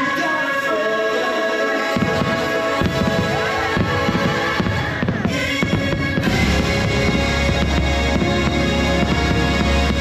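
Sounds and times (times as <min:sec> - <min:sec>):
music over loudspeakers: 0:00.0 - 0:10.0
fireworks thumps: 0:02.0 - 0:10.0.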